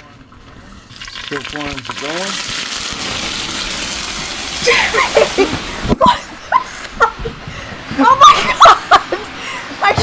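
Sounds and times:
hot oil sizzling and spattering: 0:00.8 - 0:06.0.

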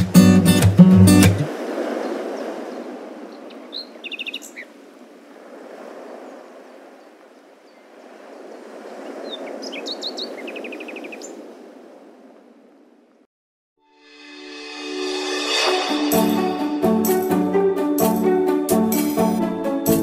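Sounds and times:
birds chirping: 0:02.0 - 0:04.8, 0:06.7 - 0:11.4.

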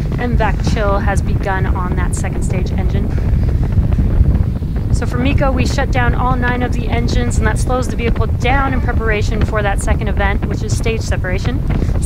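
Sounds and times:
distant rocket engines rumbling: 0:00.0 - 0:12.0.

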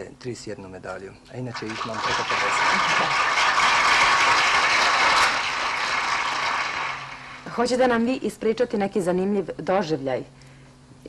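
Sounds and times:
audience applauding: 0:01.4 - 0:07.7.

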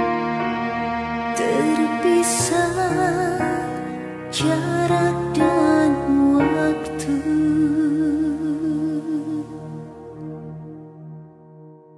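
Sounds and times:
sustained accompaniment chords: 0:00.0 - 0:11.9.

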